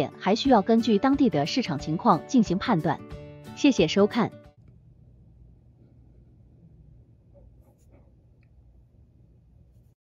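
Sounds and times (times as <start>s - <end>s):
low room hum: 4.6s - 10.0s.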